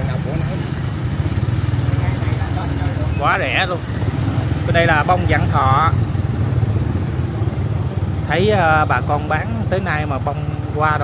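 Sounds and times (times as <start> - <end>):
small motorbike engine running: 0.0 - 7.1.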